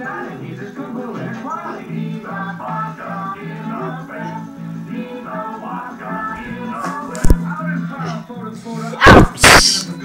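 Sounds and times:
loud sneeze: 9.0 - 9.9.

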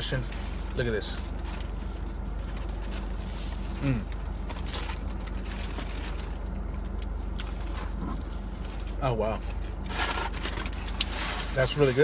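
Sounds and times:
low hum: 0.0 - 11.9
burrito being bitten and chewed: 0.2 - 11.9
person saying mm: 3.8 - 4.1.

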